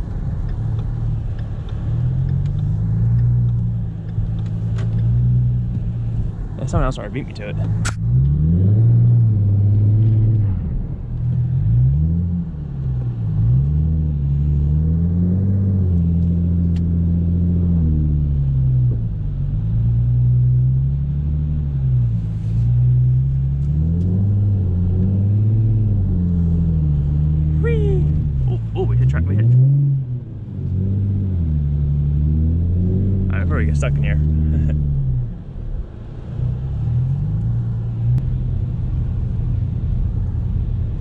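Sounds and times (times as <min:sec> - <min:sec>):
car engine revving: 0:00.0 - 0:41.0.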